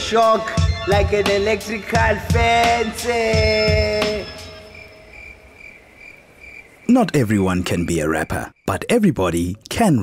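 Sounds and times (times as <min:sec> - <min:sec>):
cricket chirping: 0:00.4 - 0:09.7.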